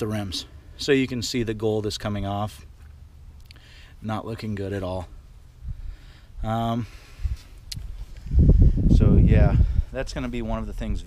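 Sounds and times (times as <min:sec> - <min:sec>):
camera handling rumble: 0:07.3 - 0:08.4.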